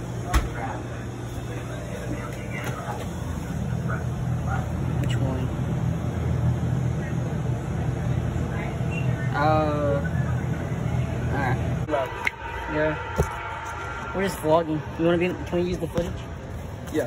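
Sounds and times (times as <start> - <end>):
refrigerator electric hum: 0.0 - 17.0.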